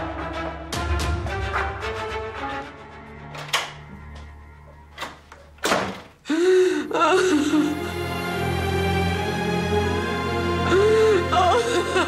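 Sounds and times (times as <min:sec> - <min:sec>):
sad background music: 0:00.0 - 0:05.6, 0:06.2 - 0:12.0
woman sobbing and wailing: 0:06.2 - 0:08.1, 0:10.4 - 0:12.0.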